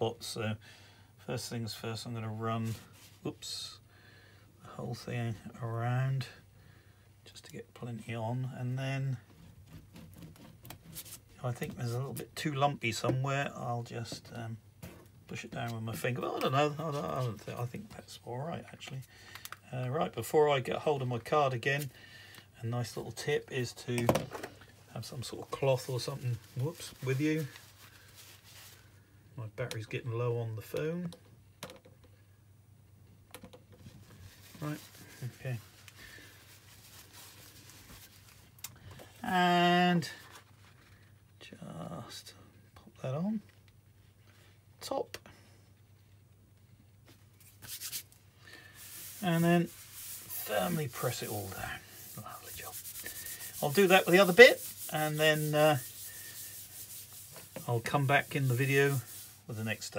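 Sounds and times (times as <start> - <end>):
cloth rubbing on card: 2.6 - 3.3, 9.2 - 12.2, 15.9 - 17.9, 24.9 - 29.0, 33.8 - 39.3, 47.1 - 59.9.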